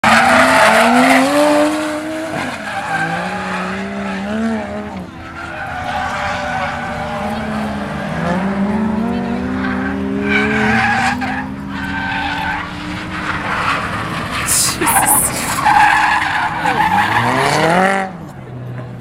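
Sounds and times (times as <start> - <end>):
tyre squeal and skidding: 0.0 - 8.7, 9.5 - 18.0
car engine revving: 0.0 - 18.6.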